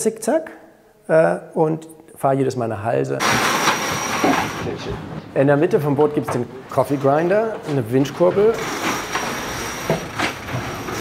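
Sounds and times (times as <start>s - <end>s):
yacht hull rushing hiss: 3.2s - 4.8s.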